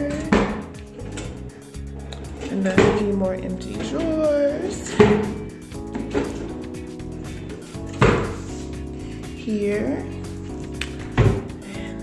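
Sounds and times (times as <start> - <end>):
wooden drawers opening and shutting: 0.0 - 6.8, 7.8 - 8.5, 10.9 - 11.6
background music: 0.0 - 12.0.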